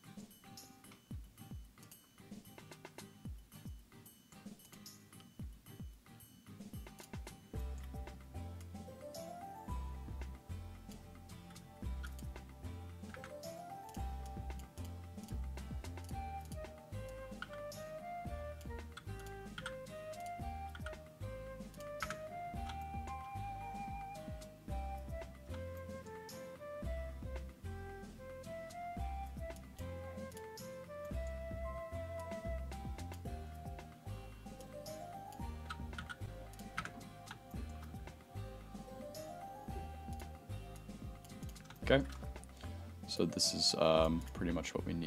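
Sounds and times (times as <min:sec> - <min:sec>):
background music with bass line: 0:06.8 - 0:45.0
keyboard and mouse clicks: 0:10.2 - 0:27.6, 0:28.4 - 0:31.4, 0:32.1 - 0:42.7.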